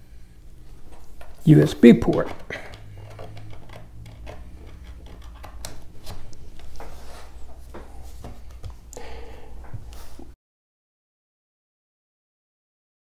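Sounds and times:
steady low hum: 0.0 - 10.4.

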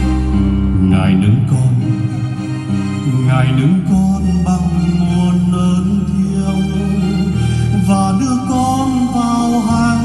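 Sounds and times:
steady bass: 0.0 - 10.0.

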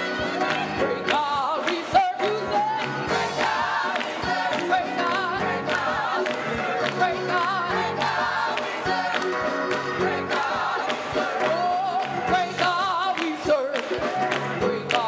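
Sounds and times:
gospel choir singing: 0.0 - 15.0
handclaps: 0.4 - 15.0.

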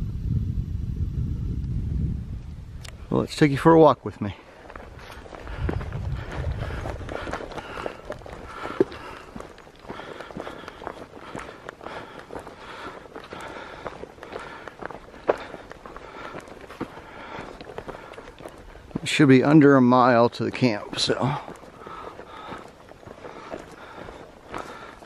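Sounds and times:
low rumble: 0.0 - 3.1
footsteps crunching on leaf litter: 3.6 - 25.0.

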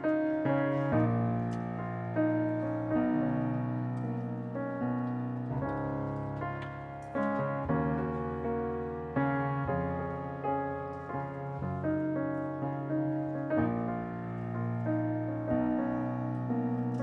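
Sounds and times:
piano playing slow chords: 0.0 - 17.0.

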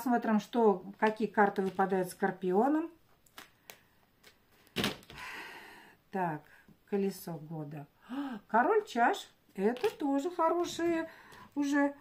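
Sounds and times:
cards rustling: 1.0 - 2.2, 3.2 - 5.2, 9.7 - 11.4.

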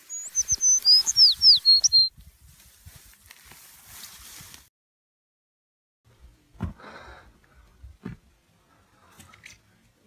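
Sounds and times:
small bird chirping: 0.0 - 2.1.

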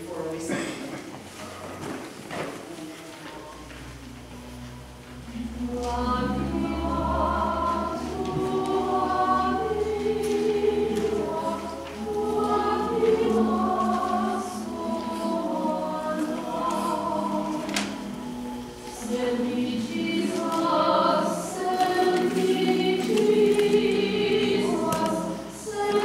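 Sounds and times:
congregation singing a hymn: 0.0 - 26.0.

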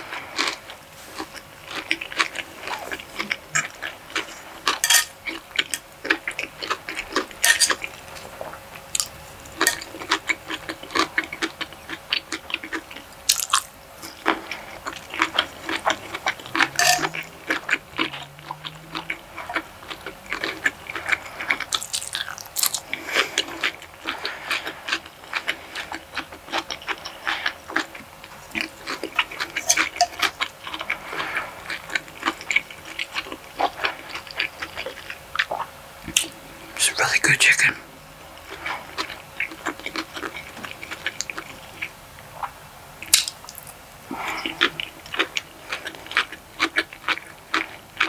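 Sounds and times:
person chewing food: 0.0 - 48.0.

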